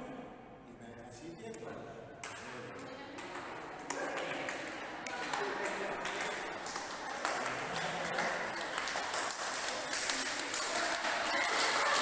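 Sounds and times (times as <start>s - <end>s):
group of people talking: 1.6s - 12.0s
sharp clap: 2.2s - 12.0s.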